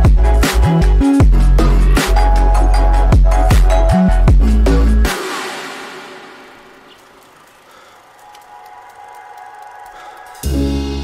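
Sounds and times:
electronic dance music: 0.0 - 7.4.

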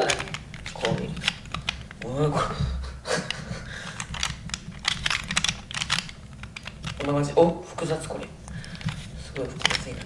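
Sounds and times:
plastic puzzle clicking: 0.0 - 2.2, 3.9 - 7.3, 8.6 - 10.0.

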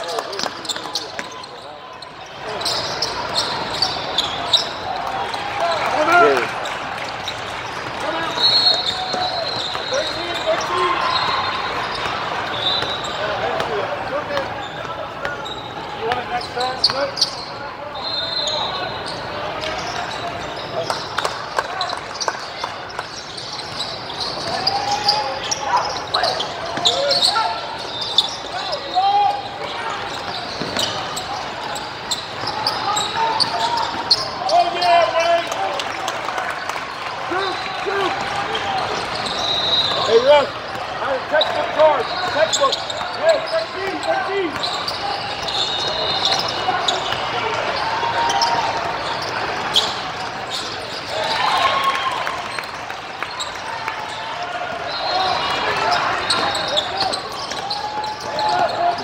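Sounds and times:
sneakers squeaking: 0.0 - 59.0
voices calling: 0.0 - 59.0.

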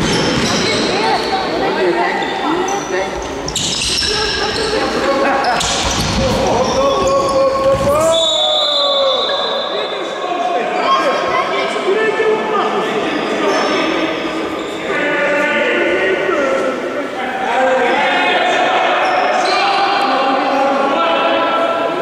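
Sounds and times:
people calling out: 3.5 - 11.4.

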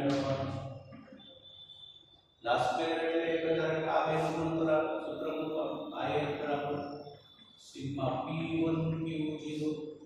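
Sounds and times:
man speaking in drawn-out tones: 0.0 - 0.8, 2.4 - 10.0.

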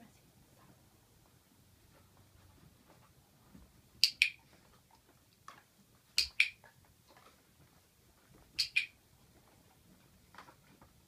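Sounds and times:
dog-training clicker double clicks: 6.2 - 6.6, 8.6 - 8.9.

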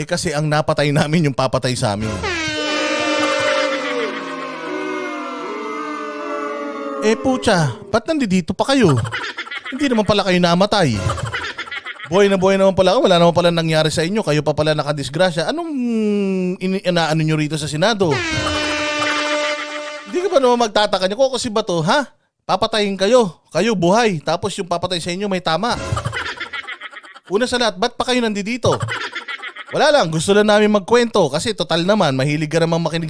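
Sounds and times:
held horn-like tone: 2.0 - 7.9, 18.1 - 20.6.

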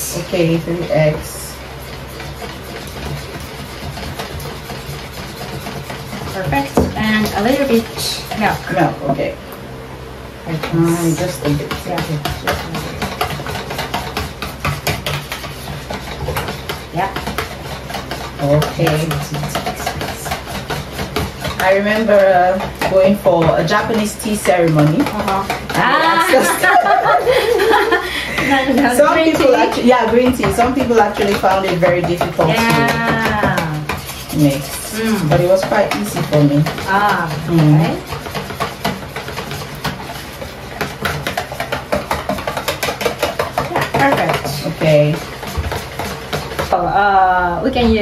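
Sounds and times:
liquid batter swishing: 0.0 - 9.0, 10.6 - 46.8
whisk tapping plastic bowl: 0.1 - 9.2, 10.5 - 46.8.

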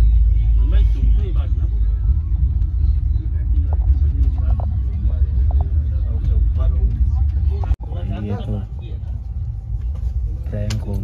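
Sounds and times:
train coach rumble: 0.0 - 11.0
people talking: 0.4 - 9.2, 10.4 - 11.0.

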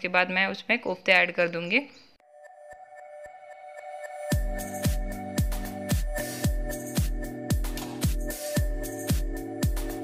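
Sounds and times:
woman speaking: 0.0 - 2.1.

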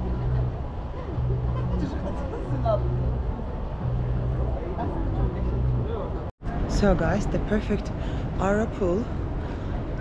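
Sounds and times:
pulsing low hum: 0.0 - 5.9.

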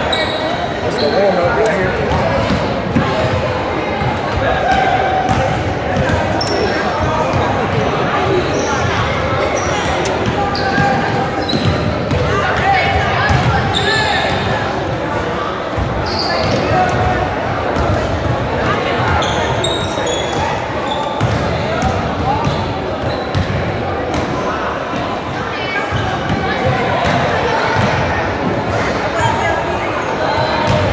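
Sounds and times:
basketballs bouncing on hardwood floor: 5.3 - 6.2, 10.2 - 12.3.

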